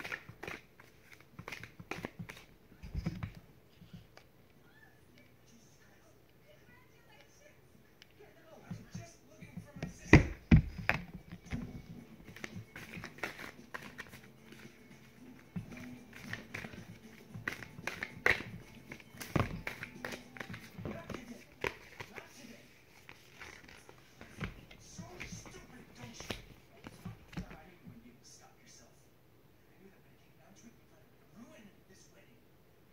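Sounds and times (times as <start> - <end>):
cards being shuffled: 0.0 - 3.4, 9.8 - 27.7.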